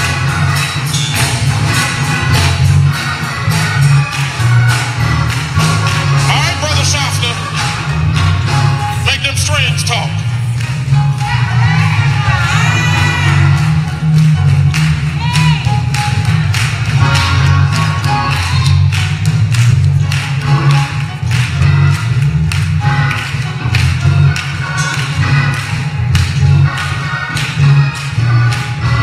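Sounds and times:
bass guitar line: 0.0 - 29.0
drum kit beat: 0.0 - 29.0
keyboard chords: 0.0 - 29.0.

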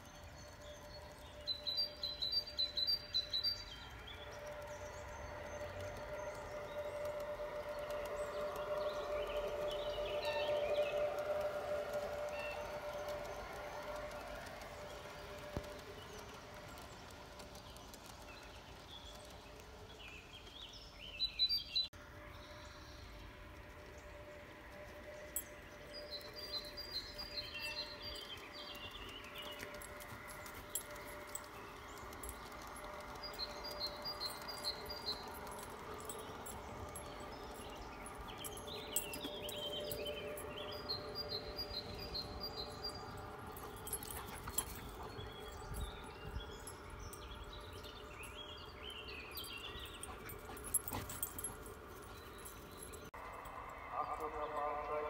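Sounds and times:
wheels clicking over rail joints: 0.0 - 53.7
bird singing: 0.0 - 55.0
model trains running on track: 0.0 - 55.0.

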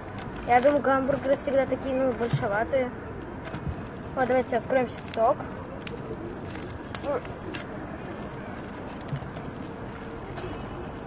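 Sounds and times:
outdoor background noise: 0.0 - 11.0
carton and wrapper handling: 3.2 - 11.0.

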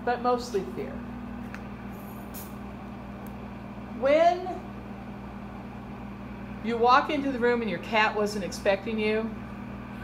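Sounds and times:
projector cooling fan humming: 0.0 - 10.0.

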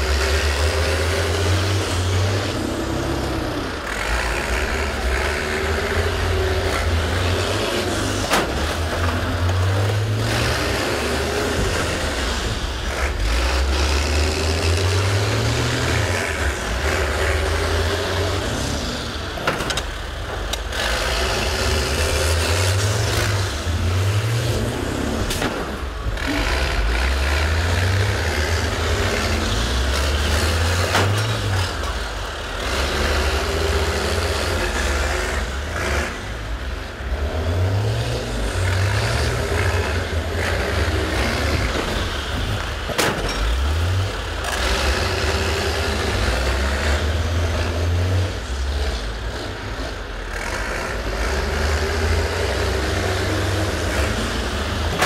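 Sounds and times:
bus engine revving: 0.0 - 55.0.

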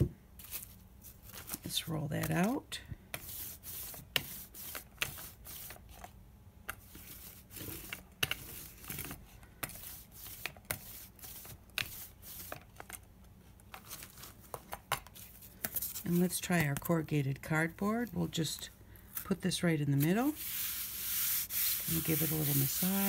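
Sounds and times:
hand roller rolling paint: 3.2 - 5.9, 9.7 - 12.6, 19.3 - 23.0.

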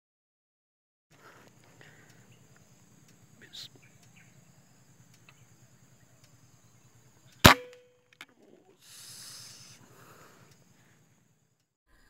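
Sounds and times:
air rifle shot: 7.4 - 7.8.

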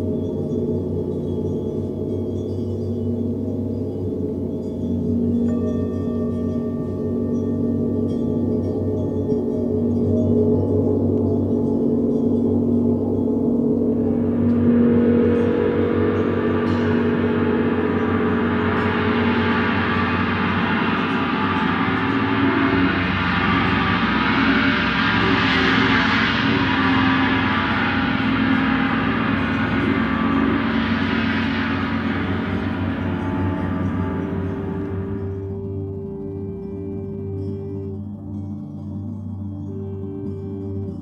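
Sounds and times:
large gong ringing: 0.0 - 41.0.

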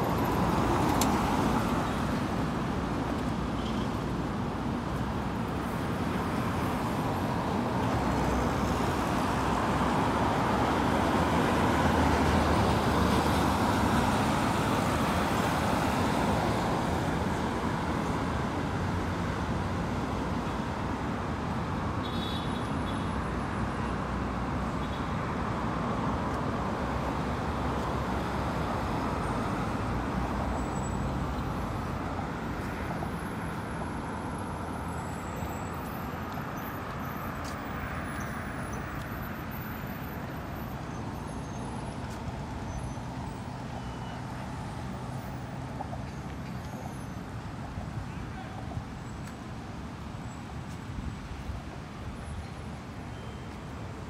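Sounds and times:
road traffic passing: 0.0 - 54.0.

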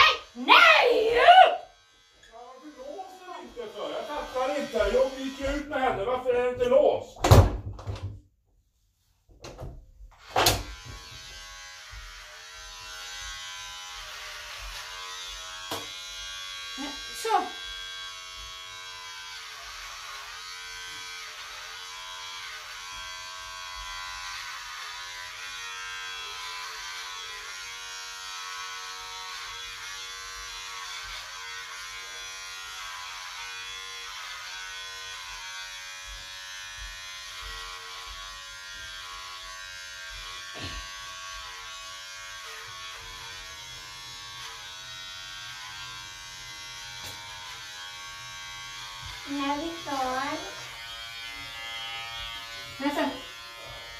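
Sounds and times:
electric hair clippers buzzing: 0.0 - 6.5, 9.6 - 53.9.

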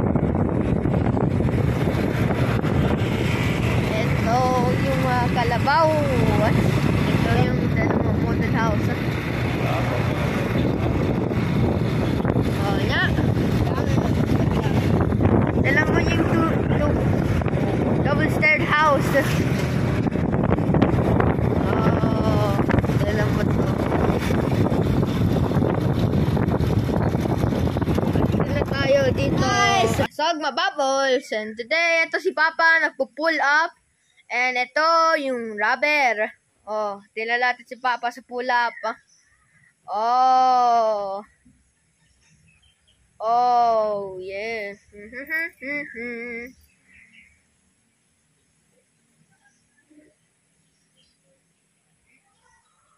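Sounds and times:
vehicle running noise: 0.0 - 30.1
wind buffeting microphone: 0.0 - 30.1
high-pitched voice calling: 29.3 - 30.1, 43.2 - 46.6.

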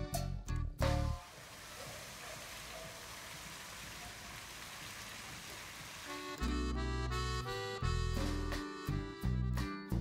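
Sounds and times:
fountain water splashing: 1.2 - 6.4.

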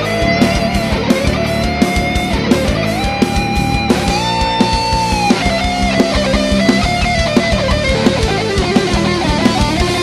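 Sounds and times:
electric guitar lead line: 0.0 - 10.0
heavy metal band playing live: 0.0 - 10.0.

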